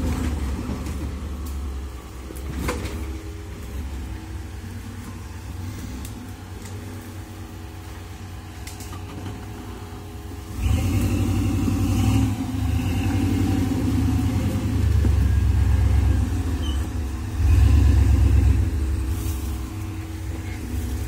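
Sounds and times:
engine revving under load: 0:10.4 - 0:21.0.

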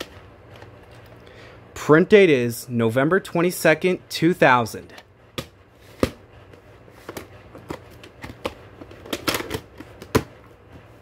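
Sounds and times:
plastic cassette clicks and rattles: 0:07.1 - 0:10.3.

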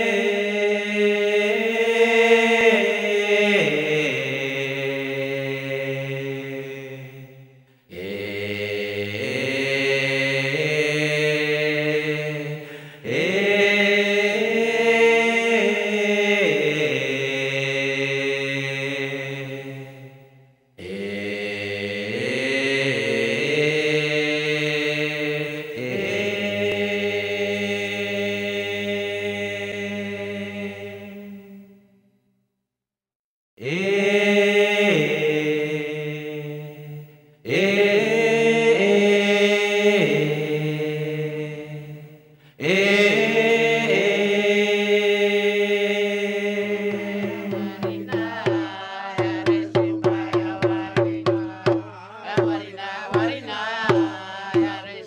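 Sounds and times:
chanted vocal music: 0:00.0 - 0:32.2, 0:33.6 - 0:55.0.

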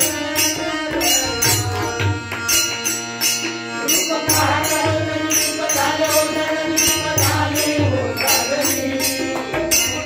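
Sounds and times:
voices singing a chant-like melody: 0:00.0 - 0:02.7, 0:03.7 - 0:10.0
harmonium: 0:00.0 - 0:10.0
tabla: 0:00.0 - 0:10.0.

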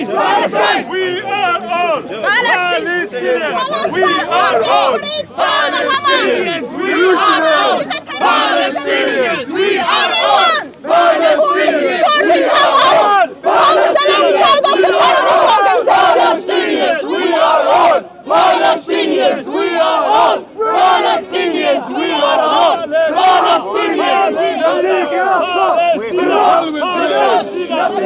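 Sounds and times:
crowd chanting slogans: 0:00.0 - 0:28.0.

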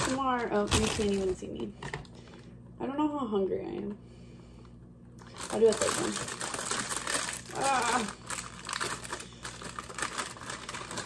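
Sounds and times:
plastic bag crinkling: 0:00.0 - 0:01.7, 0:05.2 - 0:11.0.

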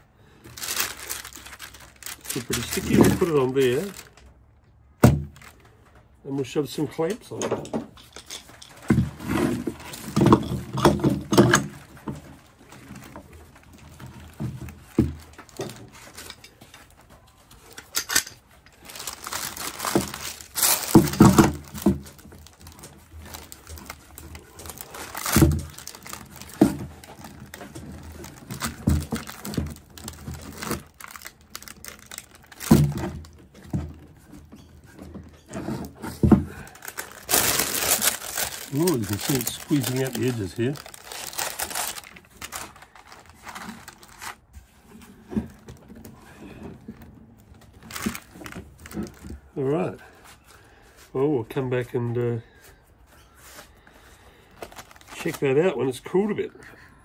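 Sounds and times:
paper crinkling: 0:00.2 - 0:04.4, 0:11.6 - 0:33.4, 0:36.6 - 0:44.6, 0:46.9 - 0:49.4, 0:53.4 - 0:55.6
metal clamps clanking: 0:17.8 - 0:18.4.

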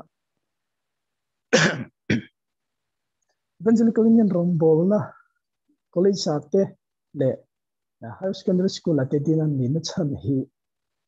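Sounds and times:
man coughing: 0:01.5 - 0:02.3.

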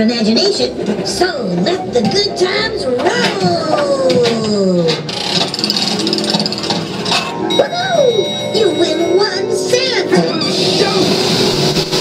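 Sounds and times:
soundtrack music: 0:05.3 - 0:12.0
steady high ringing tone: 0:07.3 - 0:10.7.

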